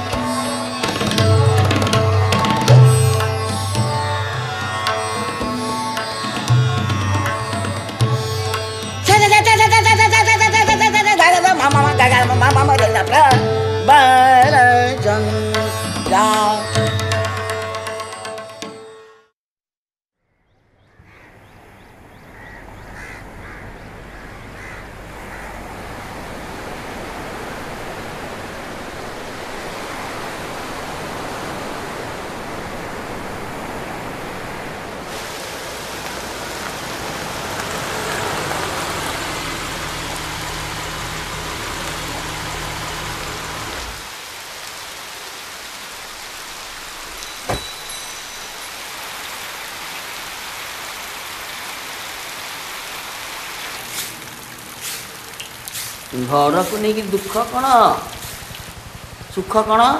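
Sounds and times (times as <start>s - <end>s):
heavy rain: 0.0s - 16.2s, 22.3s - 59.9s
surf: 22.4s - 59.9s.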